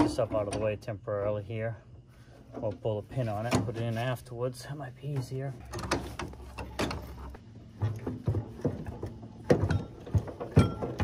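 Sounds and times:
metal knocks and clanks: 5.2 - 11.0.

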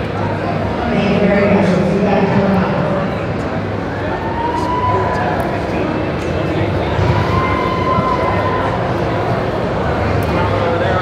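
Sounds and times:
crowd talking in a hall: 0.0 - 11.0.

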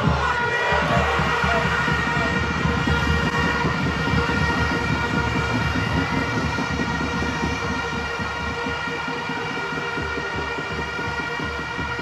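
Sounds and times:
fans' horns blaring: 0.0 - 12.0.

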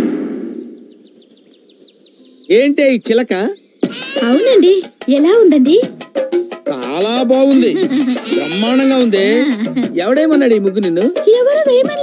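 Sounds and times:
bird chirping: 0.5 - 9.8.

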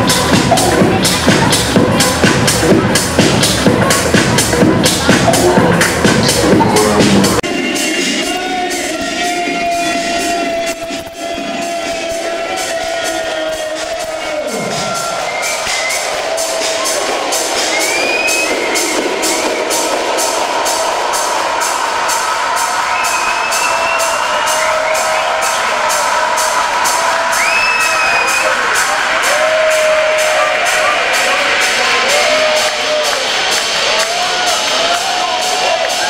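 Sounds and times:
techno over club sound system: 0.0 - 36.0
crowd whooping and cheering: 8.9 - 36.0.

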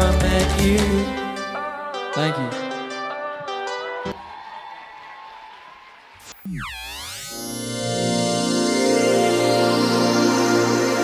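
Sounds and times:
song backing music: 0.0 - 4.6, 7.6 - 11.0
audience applause and cheering: 4.0 - 7.5.

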